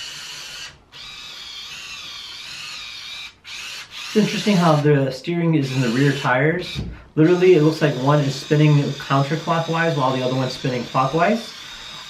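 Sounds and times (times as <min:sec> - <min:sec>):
small electric motors whining: 0:00.0 - 0:04.9, 0:05.6 - 0:12.0.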